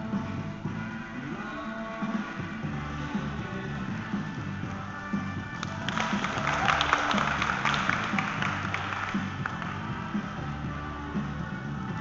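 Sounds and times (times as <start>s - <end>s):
rock music with guitar: 0.0s - 12.0s
audience applause: 5.6s - 9.8s.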